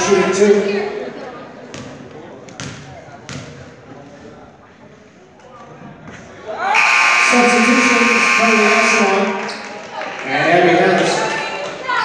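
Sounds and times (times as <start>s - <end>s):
voices: 6.7s - 12.0s
scoreboard buzzer: 6.8s - 9.4s.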